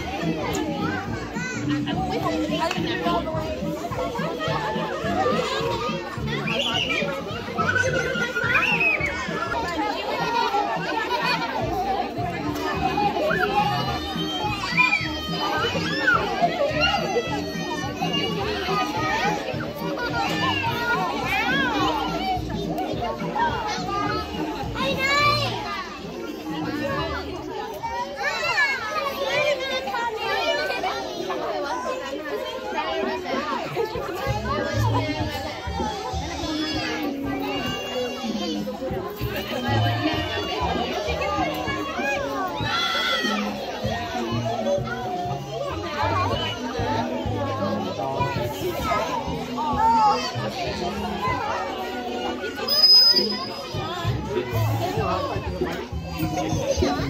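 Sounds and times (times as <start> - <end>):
young children chattering: 0.0 - 57.0.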